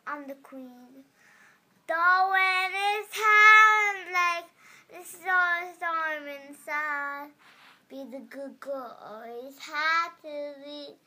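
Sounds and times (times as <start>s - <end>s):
girl singing unaccompanied: 0.0s - 1.2s, 1.8s - 11.0s.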